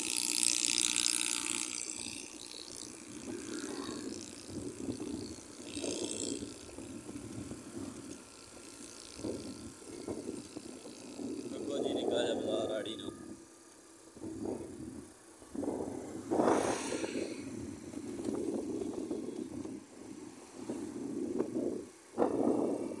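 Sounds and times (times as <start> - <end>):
motorcycle engine running: 0.0 - 23.0
wind on microphone: 3.1 - 8.1, 9.1 - 13.4, 14.2 - 23.0.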